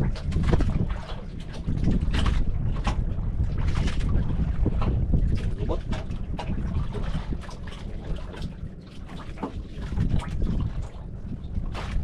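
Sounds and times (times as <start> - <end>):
water splashing against hull: 0.0 - 12.0
wind rumbling on microphone: 0.0 - 12.0.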